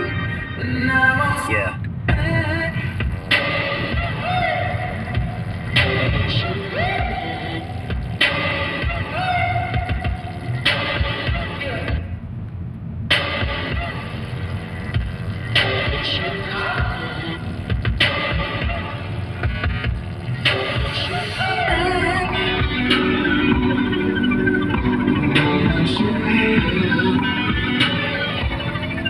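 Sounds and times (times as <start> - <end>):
pop song with singing: 0.0 - 12.1, 15.6 - 19.6, 20.5 - 29.0
car road and engine rumble: 0.0 - 29.0.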